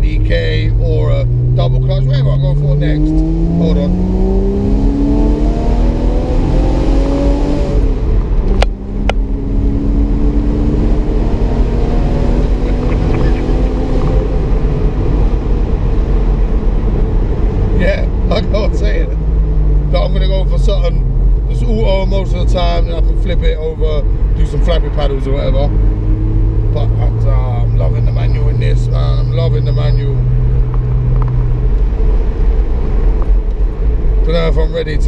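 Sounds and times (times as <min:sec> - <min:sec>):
car engine revving: 0:00.0 - 0:35.0.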